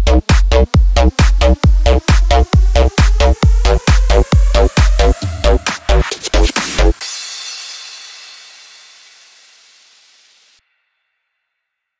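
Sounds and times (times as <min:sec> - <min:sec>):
electronic dance beat: 0:00.0 - 0:08.8.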